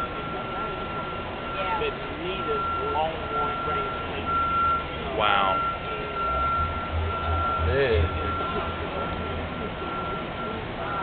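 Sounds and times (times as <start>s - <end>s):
high-pitched tone: 0.0s - 11.0s
people talking in background: 0.0s - 11.0s.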